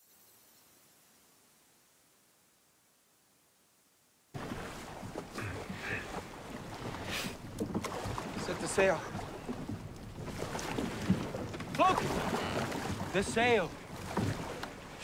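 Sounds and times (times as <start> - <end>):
wind: 0.0 - 15.0
rushing water: 4.3 - 15.0.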